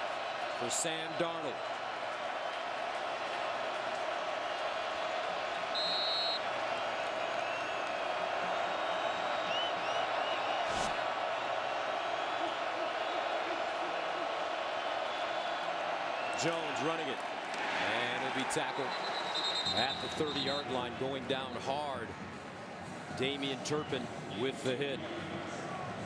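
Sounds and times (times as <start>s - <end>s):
stadium crowd roaring: 0.0s - 26.0s.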